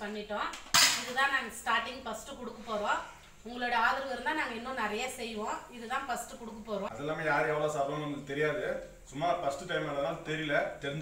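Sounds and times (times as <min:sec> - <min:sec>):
metal pot clanking on floor: 0:00.7 - 0:01.2.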